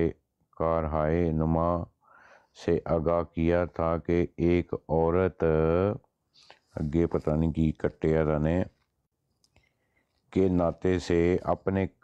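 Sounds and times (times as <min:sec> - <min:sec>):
man reading aloud: 0:00.0 - 0:02.0, 0:02.6 - 0:08.9, 0:10.2 - 0:12.0.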